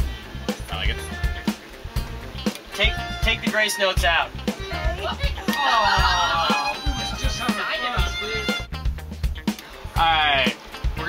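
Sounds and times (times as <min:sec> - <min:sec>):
string quartet playing: 0:00.8 - 0:08.8
voices talking: 0:02.7 - 0:08.7.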